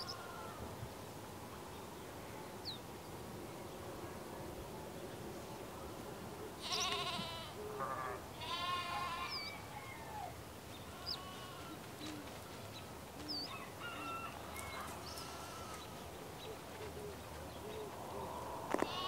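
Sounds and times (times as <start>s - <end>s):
background hiss: 0.0s - 19.0s
animal bleating: 6.6s - 9.5s, 10.9s - 12.7s, 14.8s - 15.9s, 18.7s - 19.0s.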